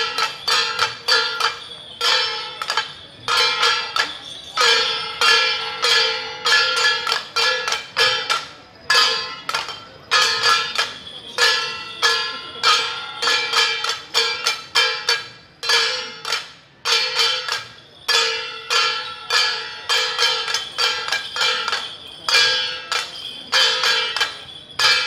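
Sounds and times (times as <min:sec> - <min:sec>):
gongs and cymbals clanging: 0:00.0 - 0:25.0.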